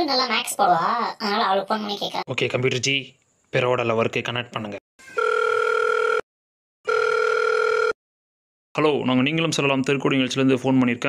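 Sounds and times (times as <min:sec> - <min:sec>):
telephone ringing tone: 0:05.0 - 0:08.0.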